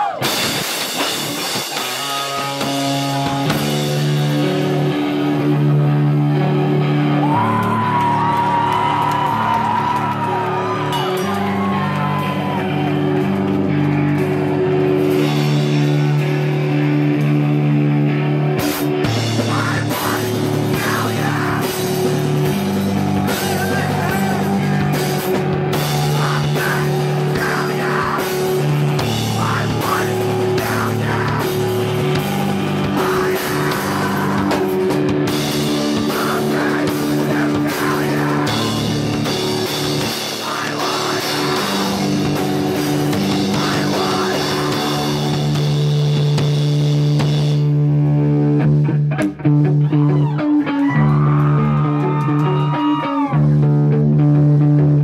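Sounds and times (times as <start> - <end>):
drum kit: 0.0 - 49.5
distorted electric guitars: 0.0 - 55.0.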